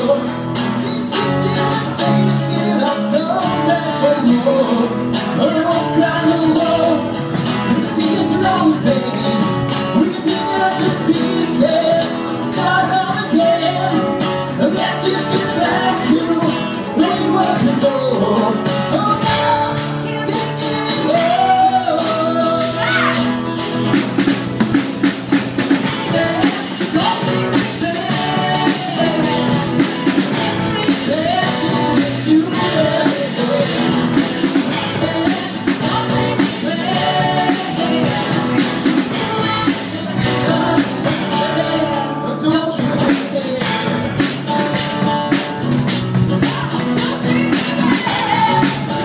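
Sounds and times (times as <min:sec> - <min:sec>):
person singing: 0:00.0 - 0:24.4, 0:25.6 - 0:44.7, 0:46.2 - 0:49.0
drum kit with cymbals: 0:00.0 - 0:49.0
electric bass: 0:00.0 - 0:49.0
rock band playing: 0:00.0 - 0:49.0
strummed acoustic guitar: 0:00.0 - 0:49.0.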